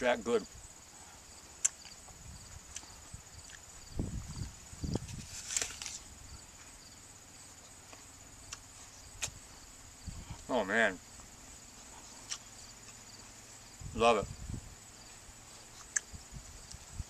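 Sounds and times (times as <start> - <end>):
insects chirring: 0.0 - 17.0
crunchy apple bite: 1.6 - 2.0, 4.4 - 6.1.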